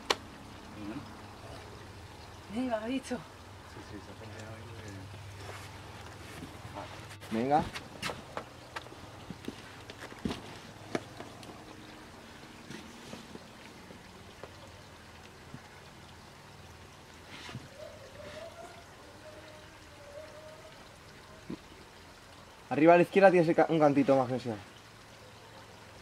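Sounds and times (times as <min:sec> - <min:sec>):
stream trickling: 0:00.0 - 0:26.0.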